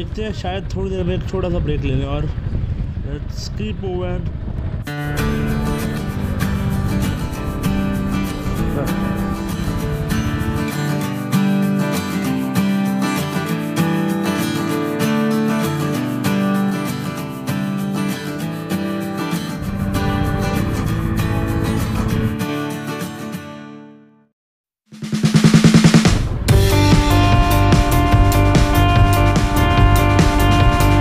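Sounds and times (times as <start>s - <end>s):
quick drum roll: 19.5s - 22.5s, 24.9s - 31.0s
background music with drums: 25.0s - 31.0s.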